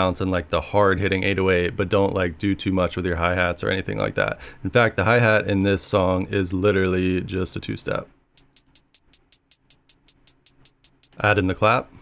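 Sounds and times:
hi-hat ticks: 0:08.4 - 0:11.2.

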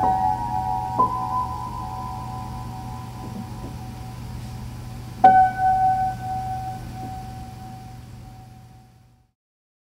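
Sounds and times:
low steady hum: 0:00.0 - 0:09.3.

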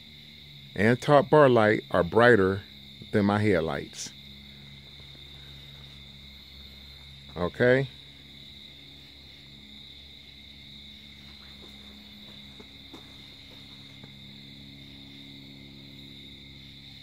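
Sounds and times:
crickets chirping: 0:00.0 - 0:17.0
faint low hum: 0:00.0 - 0:17.0.

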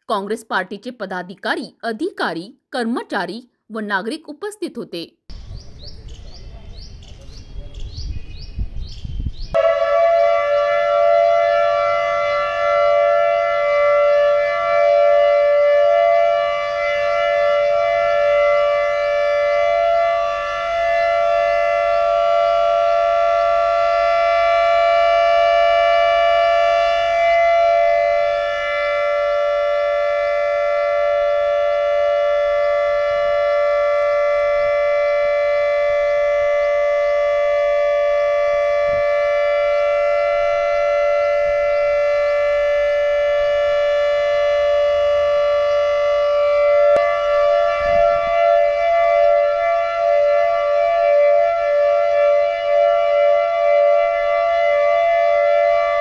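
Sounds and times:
siren steady tone: 0:09.5 - 0:56.0.

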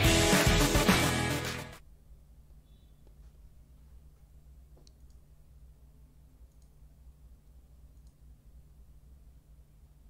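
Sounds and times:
low steady hum: 0:01.8 - 0:10.0.

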